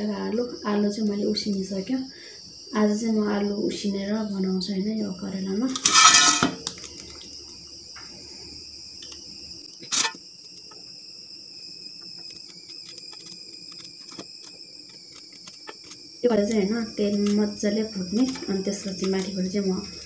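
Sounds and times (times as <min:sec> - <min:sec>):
crickets chirring: 0:00.0 - 0:20.0.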